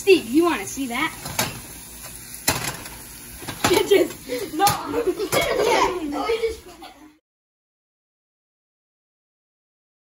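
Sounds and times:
kitchen background noise: 0:00.0 - 0:07.2
laughter: 0:04.8 - 0:07.2.

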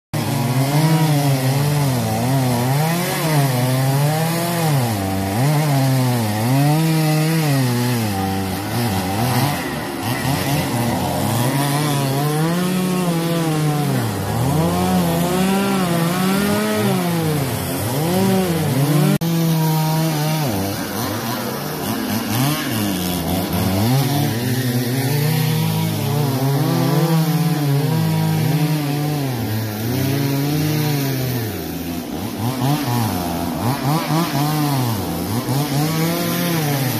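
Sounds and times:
chainsaw cutting wood: 0:00.2 - 0:36.9.

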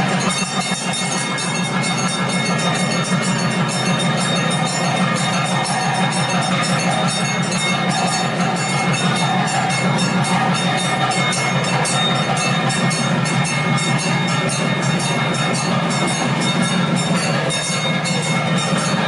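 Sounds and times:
bells rung rapidly: 0:00.0 - 0:19.0
drums and cymbals: 0:00.0 - 0:19.0.

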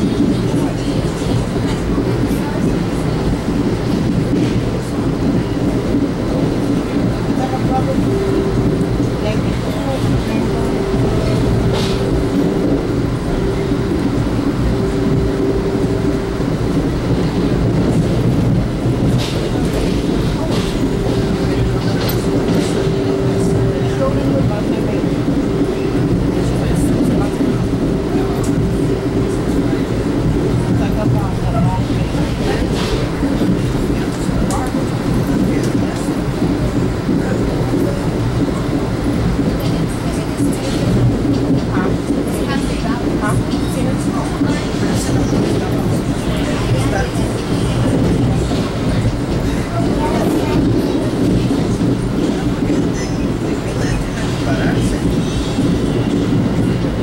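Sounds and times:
train wheels rumbling on rails: 0:00.0 - 0:57.0.

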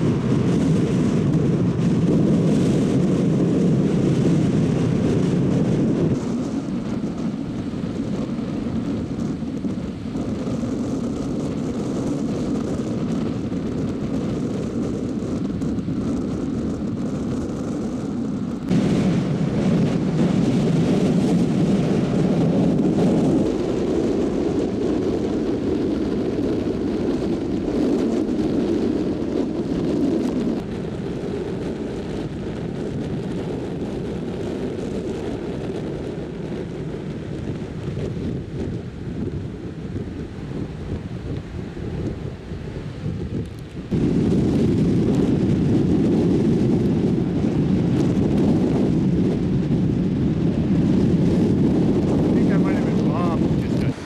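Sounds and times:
wind on microphone: 0:00.0 - 0:54.0
ocean surf: 0:52.2 - 0:54.0.

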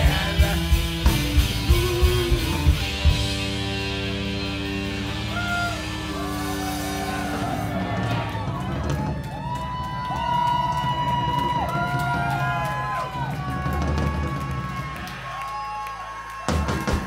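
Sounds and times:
punk rock band playing: 0:00.0 - 0:15.5, 0:16.3 - 0:17.0.

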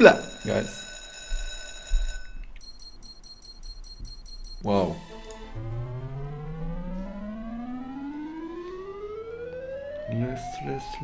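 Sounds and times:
bell-like ringing tone: 0:00.0 - 0:05.2
fast high beeps: 0:02.6 - 0:05.2.

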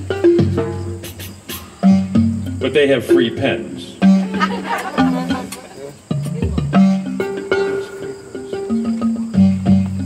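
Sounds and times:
ringing pitched drum tones: 0:00.0 - 0:10.0.

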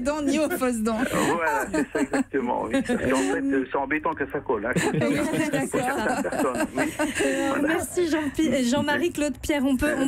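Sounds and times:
laughter: 0:00.2 - 0:03.2, 0:04.8 - 0:07.7.

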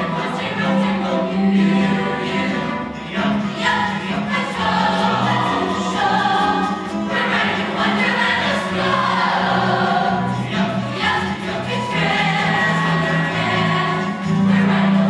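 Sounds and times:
mixed choir singing: 0:00.0 - 0:15.0.

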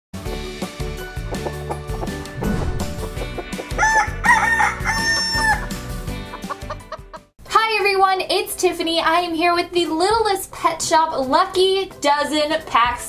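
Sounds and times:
music jingle with a beat: 0:02.4 - 0:07.2
rooster crowing: 0:03.6 - 0:05.8
woman talking: 0:07.5 - 0:13.0.

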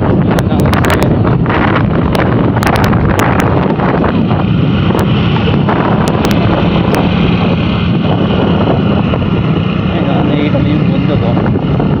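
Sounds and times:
motor scooter engine hum: 0:00.0 - 0:12.0
wind rushing over microphone: 0:00.0 - 0:12.0.

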